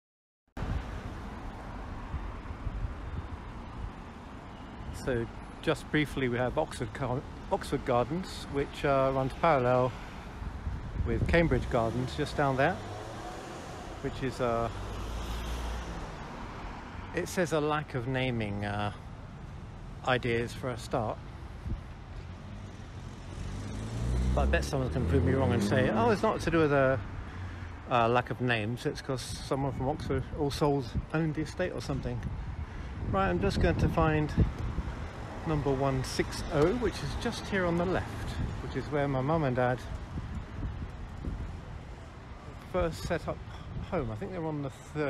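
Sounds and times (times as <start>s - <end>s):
cars going by: 0.6s - 45.0s.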